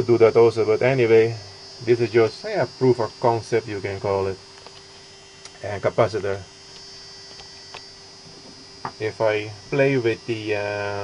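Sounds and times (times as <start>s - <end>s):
high-pitched whine: 0.0s - 11.0s
small motor humming: 0.0s - 11.0s.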